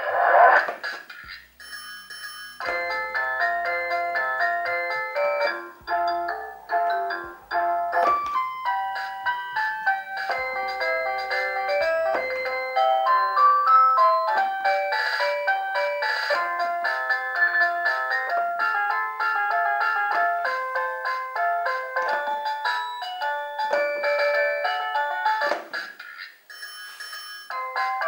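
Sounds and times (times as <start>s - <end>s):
electronic toy tune: 1.6s - 25.5s.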